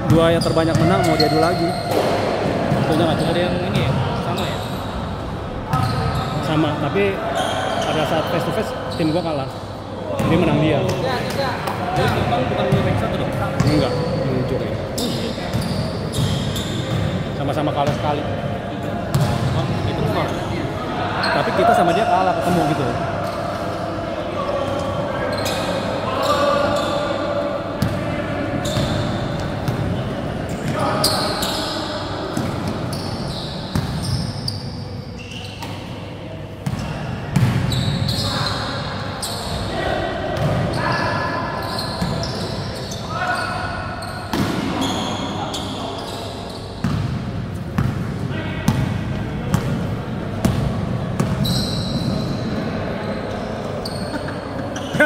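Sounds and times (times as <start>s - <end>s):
sneaker squeaks: 0.1s - 18.2s, 19.1s - 20.6s, 21.2s - 23.8s, 24.7s - 27.2s, 28.6s - 36.0s, 36.6s - 47.2s, 50.4s - 55.0s.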